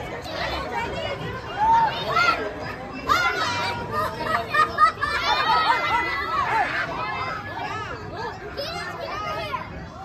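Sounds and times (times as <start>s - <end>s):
crowd chatter: 0.0s - 10.0s
children calling out: 0.3s - 9.8s.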